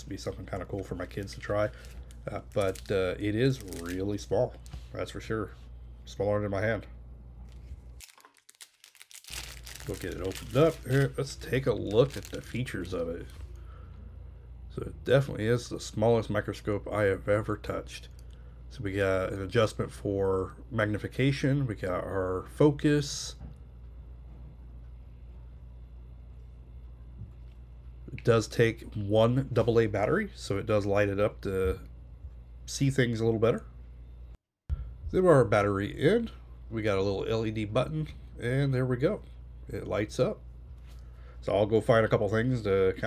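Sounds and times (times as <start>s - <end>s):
low steady hum: 0.0s - 43.0s
plastic bag crinkling: 0.4s - 4.7s, 7.5s - 13.4s.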